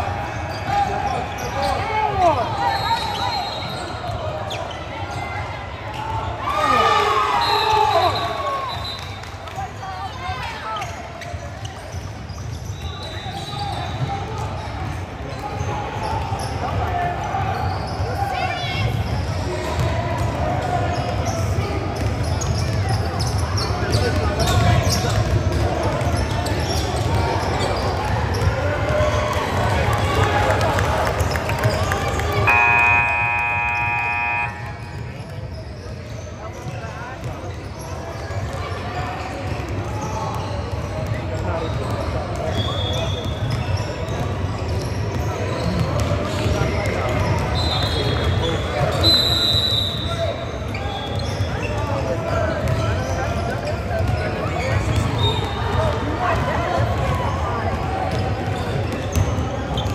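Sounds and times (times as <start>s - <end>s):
murmur of many voices: 0.0s - 59.9s
scoreboard horn: 32.4s - 34.9s.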